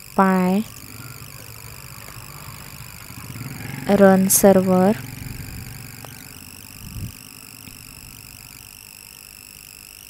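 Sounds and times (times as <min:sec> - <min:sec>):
low background hum: 0:00.0 - 0:09.6
faint high whining tones: 0:00.0 - 0:10.0.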